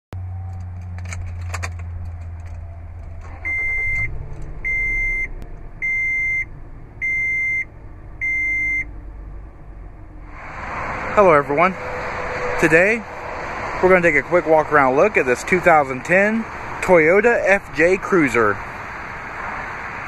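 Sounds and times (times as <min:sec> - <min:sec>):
high warning chime beeps: 0:04.7 - 0:08.9.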